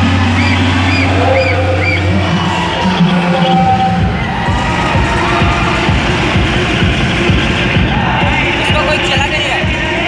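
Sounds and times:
crowd cheering and shouting: 0:00.0 - 0:10.0
loud music with low beat: 0:00.0 - 0:10.0.

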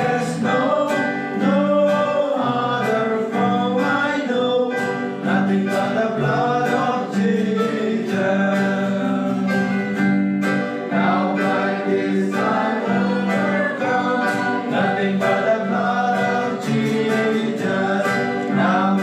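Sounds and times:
strummed acoustic guitar: 0:00.0 - 0:19.0
voices singing a worship song: 0:00.0 - 0:19.0.

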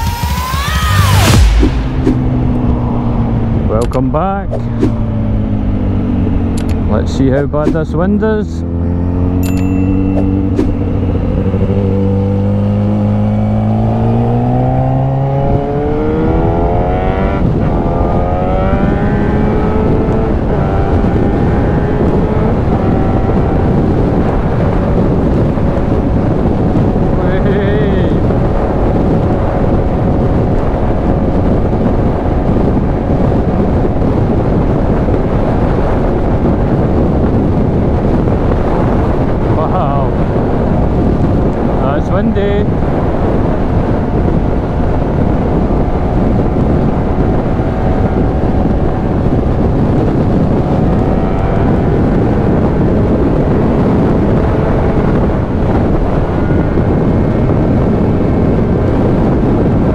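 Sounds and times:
motorcycle engine accelerating: 0:00.0 - 0:59.9
wind noise on microphone: 0:00.0 - 0:59.9.

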